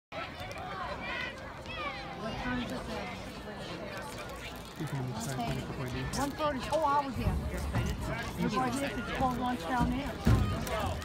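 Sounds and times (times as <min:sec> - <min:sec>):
spectators calling and chattering: 0:00.1 - 0:11.0.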